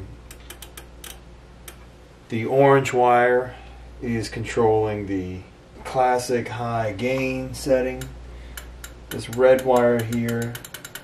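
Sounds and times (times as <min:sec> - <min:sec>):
amplifier low hum: 0:00.0 - 0:10.8.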